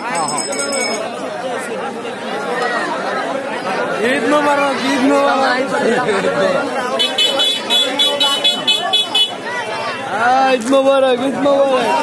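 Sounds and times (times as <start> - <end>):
street chatter: 0.0 - 12.0.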